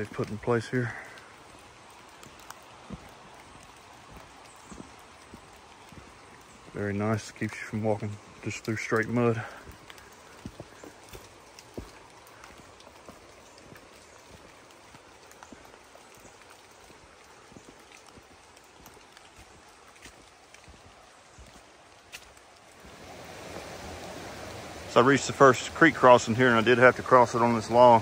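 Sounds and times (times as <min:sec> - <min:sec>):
creek rushing: 0:00.0 - 0:28.0
footsteps on wet trail and wood: 0:00.0 - 0:28.0
light rain dripping: 0:00.0 - 0:28.0.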